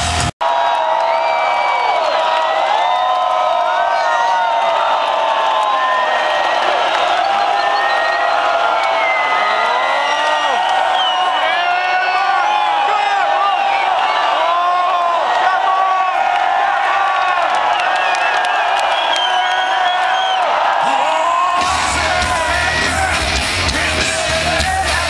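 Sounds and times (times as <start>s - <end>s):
heavy metal guitar and drums: 0.0s - 0.3s, 21.6s - 25.0s
stadium crowd cheering: 0.0s - 25.0s.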